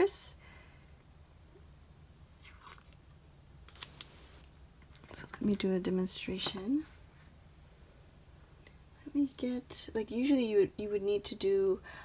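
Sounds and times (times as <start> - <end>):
tape ripping: 2.3 - 5.6.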